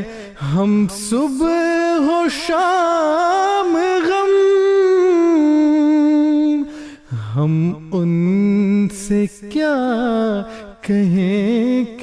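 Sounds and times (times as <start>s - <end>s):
man singing unaccompanied: 0.0s - 6.7s, 7.3s - 12.0s.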